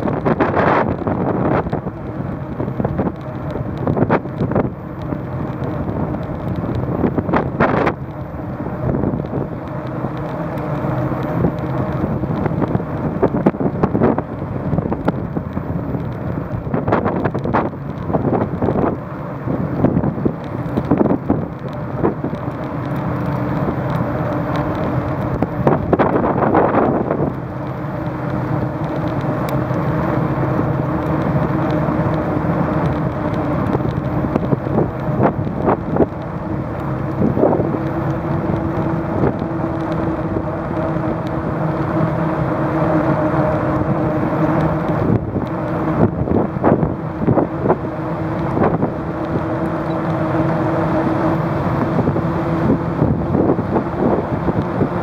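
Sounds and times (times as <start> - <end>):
bicycle hum on paved path: 0.0 - 55.0
wind on microphone: 0.0 - 55.0.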